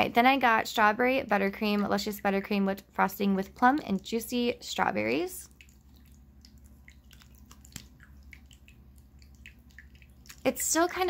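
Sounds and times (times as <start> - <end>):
low steady hum: 0.0 - 11.0
water drips and splashes: 5.0 - 11.0
fountain water trickling: 5.4 - 11.0.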